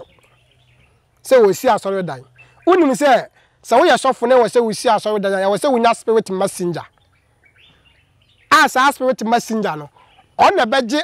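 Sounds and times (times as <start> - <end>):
faint bird chirps: 0.0 - 4.4, 6.3 - 10.7
man speaking: 1.2 - 6.9, 8.5 - 11.0.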